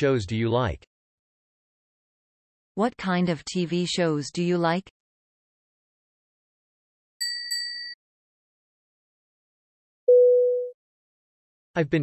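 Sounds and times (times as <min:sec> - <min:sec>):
bright chime dings: 0:07.2 - 0:08.0.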